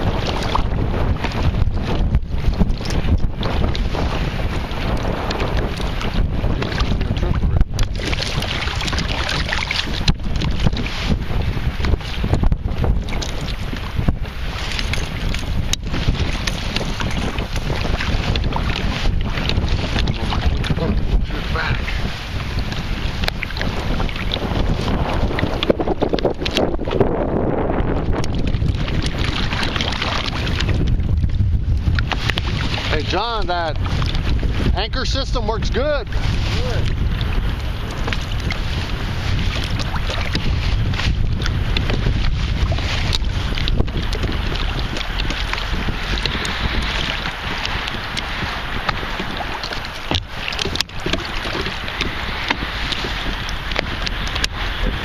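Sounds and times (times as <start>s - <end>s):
water lapping: 0.0s - 55.0s
wind buffeting microphone: 0.0s - 55.0s.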